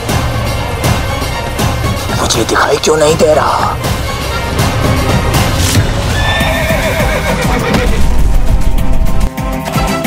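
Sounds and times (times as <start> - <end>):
horse whinnying: 6.1 - 8.0.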